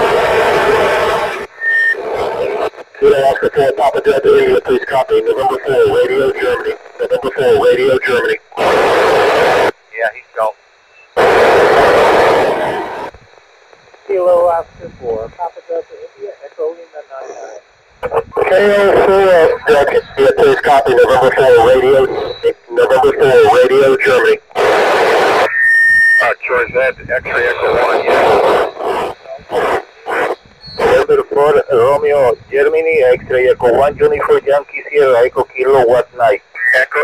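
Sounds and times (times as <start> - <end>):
garbled radio voices: 0.0 - 13.1, 14.0 - 37.0
static hiss bursts: 0.0 - 37.0.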